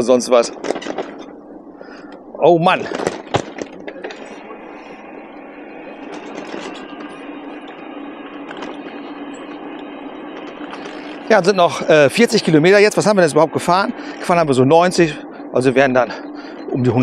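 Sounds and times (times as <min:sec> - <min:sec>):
low steady hum: 0:00.0 - 0:17.0
bike knocking over bumps: 0:02.9 - 0:04.1.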